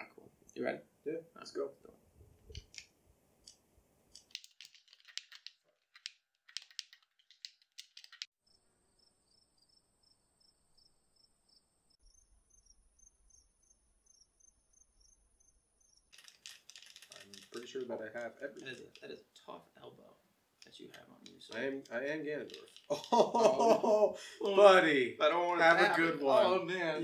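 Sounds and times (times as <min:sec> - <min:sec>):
crickets trilling: 0:08.5 - 0:16.1.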